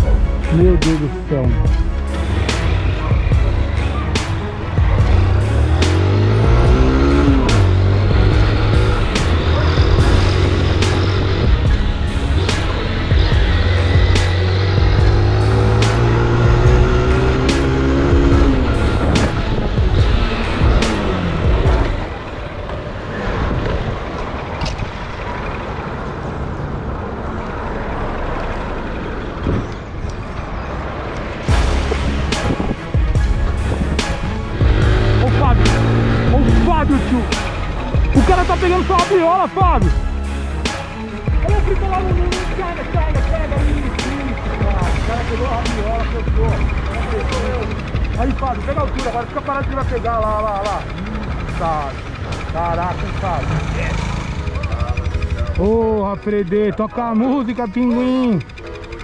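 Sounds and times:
music with a regular beat: 0:00.0 - 0:22.1, 0:31.5 - 0:52.6
vehicle engine accelerating: 0:00.0 - 0:59.0.

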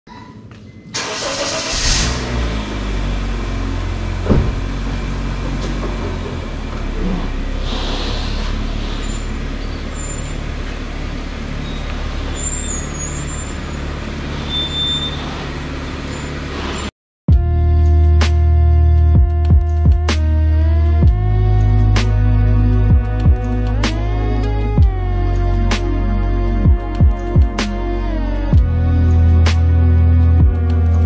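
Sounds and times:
car engine starting and idling: 0:00.9 - 0:31.0.

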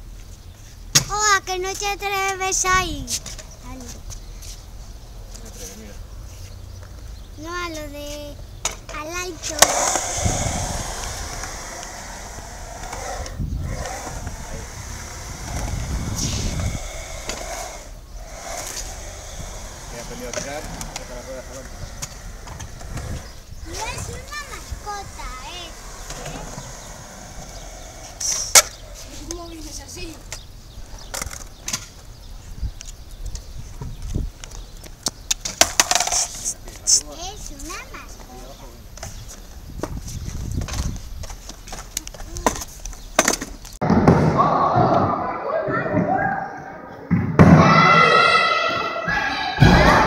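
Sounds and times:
skateboard wheels rolling on concrete: 0:00.0 - 0:50.0
children's voices: 0:01.1 - 0:04.0, 0:07.4 - 0:30.3, 0:44.3 - 0:50.0
sharp skateboard clack: 0:08.6 - 0:15.9, 0:21.7 - 0:29.4, 0:35.0 - 0:36.5
skateboards clattering on wooden ramps: 0:35.4 - 0:36.4.

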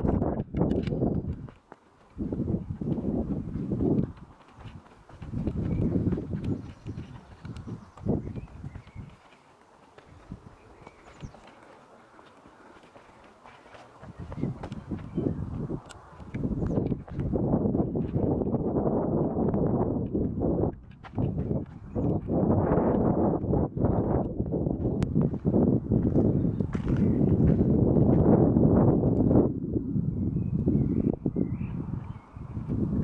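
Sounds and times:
wind buffeting microphone: 0:00.0 - 0:33.0
footsteps over rock and grass: 0:00.3 - 0:18.4, 0:24.1 - 0:28.4.

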